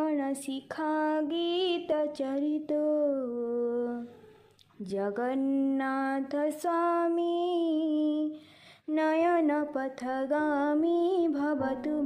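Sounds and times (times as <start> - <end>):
woman singing a hymn: 0.0 - 4.1, 4.8 - 12.0.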